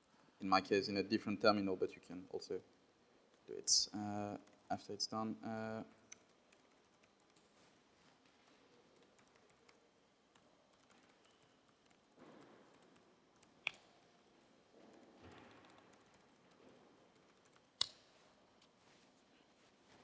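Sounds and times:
typing on laptop keyboard: 4.3 - 4.7, 6.0 - 7.8, 8.4 - 14.2, 15.0 - 17.9.

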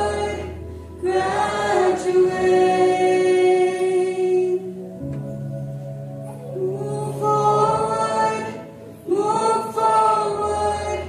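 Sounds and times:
choir singing: 0.0 - 4.6, 6.6 - 11.0.

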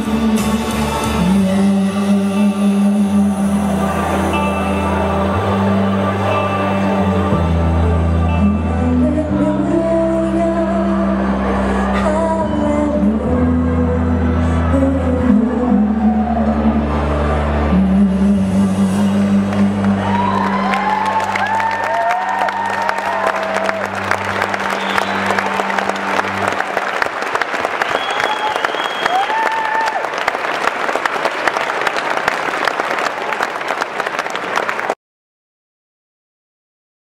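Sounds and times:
live song held chord: 0.0 - 28.6
audience applause: 19.9 - 35.0
audience cheering: 19.9 - 35.0.

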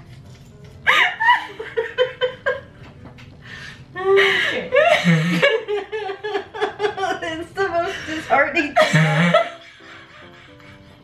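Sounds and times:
woman laughing: 0.9 - 2.8, 4.0 - 11.0.

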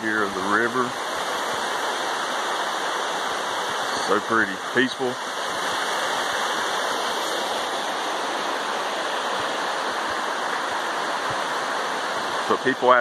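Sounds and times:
creek water rushing over rocks: 0.0 - 13.0.

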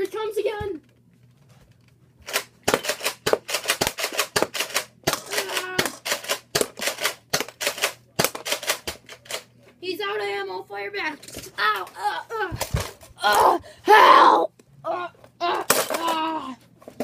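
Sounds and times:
toy blaster firing rapidly: 2.3 - 9.1
person grunting: 11.6 - 12.6, 13.2 - 16.6.

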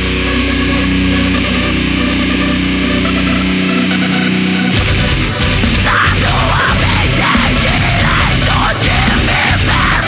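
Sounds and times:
deep bass: 0.0 - 10.0
hardcore rock song: 0.0 - 10.0.

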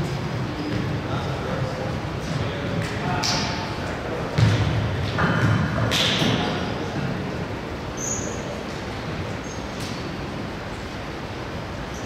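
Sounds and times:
heavy thump echoing: 4.3 - 6.6.

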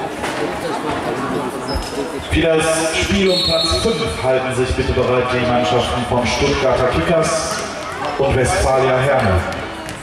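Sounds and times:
man on public address: 2.1 - 9.7.

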